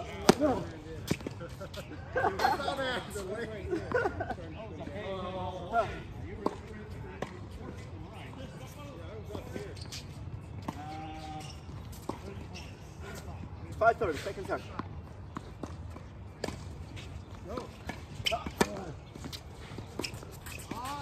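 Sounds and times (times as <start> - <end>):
voices: 0.0 - 15.2, 16.3 - 21.0
tennis ball bouncing on court: 14.7 - 16.8.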